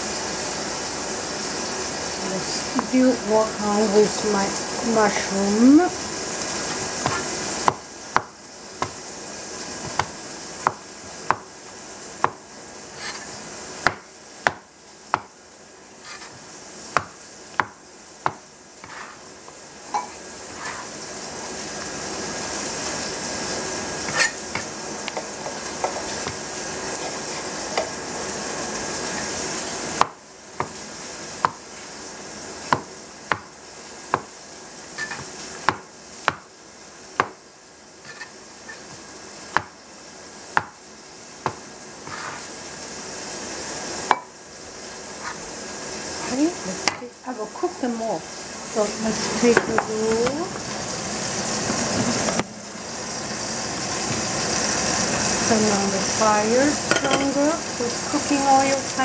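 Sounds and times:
steady hiss: 0:00.0 - 0:59.0
cleaver knocking on cutting board: 0:07.0 - 0:09.0, 0:09.8 - 0:11.5, 0:12.2 - 0:12.4, 0:13.8 - 0:15.3, 0:17.0 - 0:19.0, 0:32.7 - 0:33.5, 0:37.2 - 0:37.4, 0:40.6 - 0:40.8.

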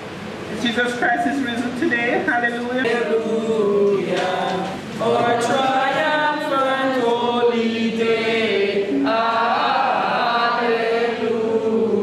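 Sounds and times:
group singing together: 0:02.8 - 0:12.0.

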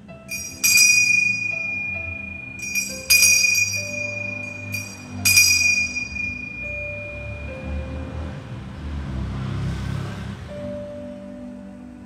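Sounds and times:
soft sustained music notes: 0:00.0 - 0:12.0
altar bell ringing: 0:00.3 - 0:08.5.

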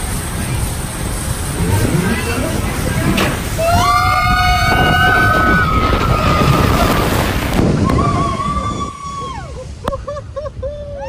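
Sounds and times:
rushing water: 0:00.0 - 0:11.0
wind buffeting microphone: 0:00.0 - 0:11.0
riders screaming: 0:01.6 - 0:09.6.

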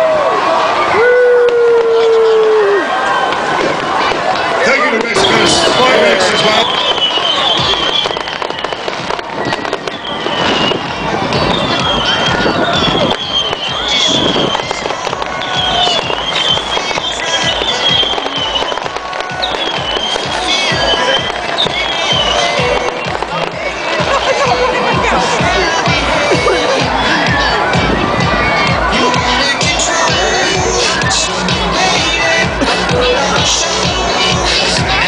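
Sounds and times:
beach crowd noise: 0:00.0 - 0:35.0.

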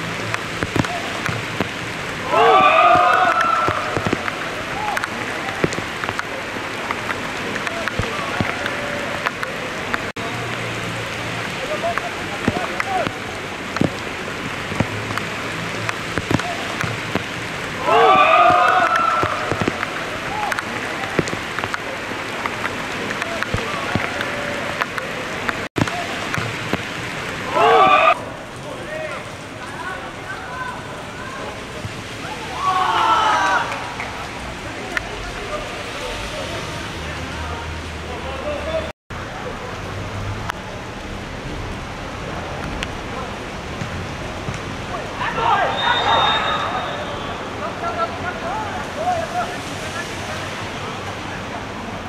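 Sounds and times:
heavy rain on hard court: 0:00.0 - 0:52.0
sharp tap: 0:00.3 - 0:01.8, 0:03.0 - 0:06.3, 0:12.0 - 0:13.2, 0:14.7 - 0:17.3, 0:18.4 - 0:19.9, 0:20.5 - 0:26.9
people shouting: 0:02.1 - 0:05.8, 0:17.7 - 0:21.3, 0:27.4 - 0:28.2, 0:32.2 - 0:34.0, 0:45.2 - 0:47.2.

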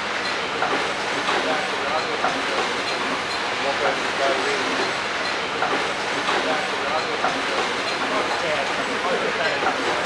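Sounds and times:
production line machinery rattling: 0:00.0 - 0:10.0.

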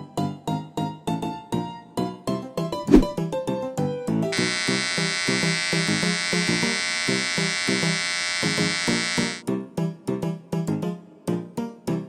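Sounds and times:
electric hair clippers buzzing: 0:04.3 - 0:09.4.

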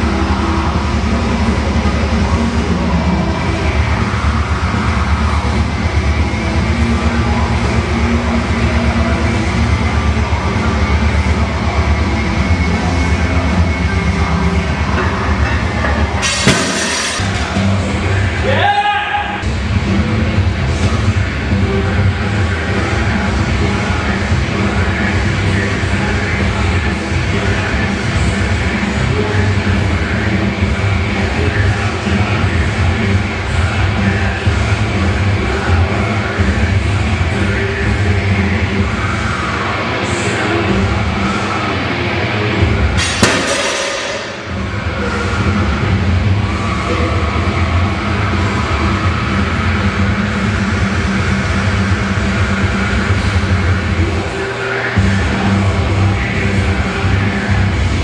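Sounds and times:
loud music: 0:00.0 - 0:58.0
sudden crash: 0:14.9 - 0:18.4, 0:43.0 - 0:45.8.

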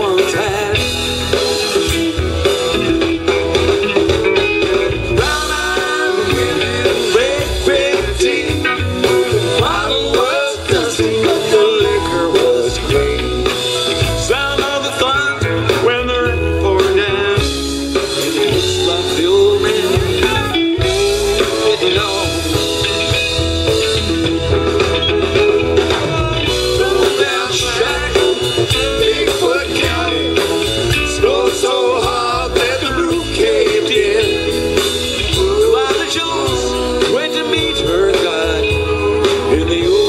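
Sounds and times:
live rock band playing: 0:00.0 - 0:40.0
electric guitar bending lines: 0:17.6 - 0:39.8.

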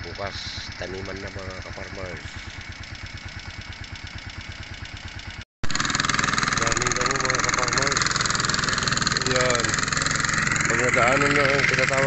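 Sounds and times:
voices: 0:00.0 - 0:02.5, 0:09.2 - 0:12.0
loud running noise: 0:00.0 - 0:12.0
small engine idling: 0:00.0 - 0:12.0.

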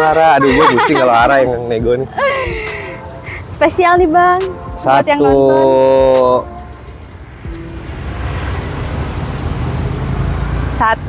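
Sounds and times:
road traffic rumble: 0:00.0 - 0:11.0
motorcycle passing: 0:02.6 - 0:11.0.

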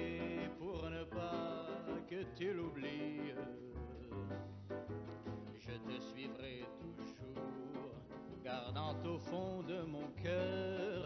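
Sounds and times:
man singing love song: 0:00.0 - 0:04.5, 0:05.4 - 0:11.0
piano: 0:00.0 - 0:11.0.

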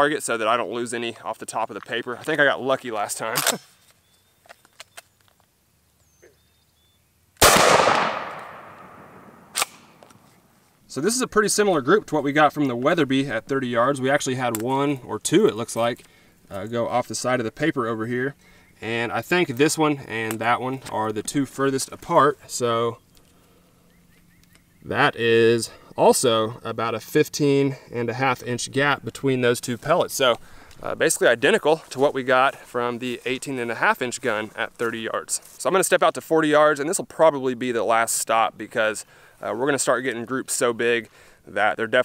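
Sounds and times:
shotgun shot echoing: 0:07.4 - 0:10.0.

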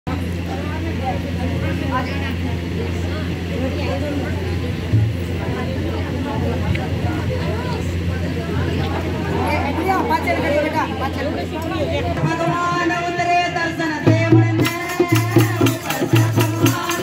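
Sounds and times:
women chattering: 0:00.1 - 0:14.3.

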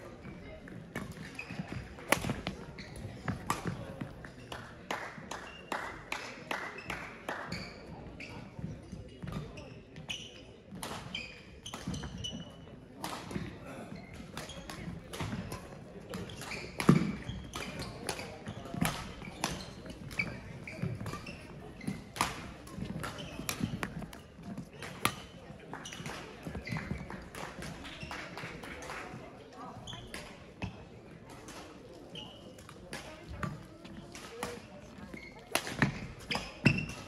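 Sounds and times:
murmur of voices: 0:00.0 - 0:37.0
racket hitting shuttlecock: 0:01.0 - 0:02.6, 0:03.2 - 0:03.8, 0:14.4 - 0:27.8, 0:35.5 - 0:37.0
shoes squeaking on sports floor: 0:01.0 - 0:04.4, 0:07.5 - 0:12.6, 0:16.2 - 0:27.3, 0:31.9 - 0:37.0.

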